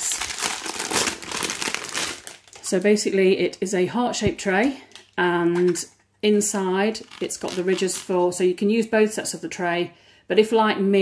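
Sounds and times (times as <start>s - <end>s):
plastic bag crinkling: 0.0s - 3.2s, 4.5s - 5.9s, 6.9s - 8.4s.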